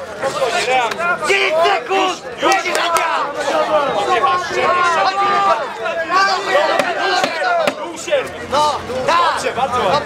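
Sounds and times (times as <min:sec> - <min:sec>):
spectators shouting: 0:00.0 - 0:10.0.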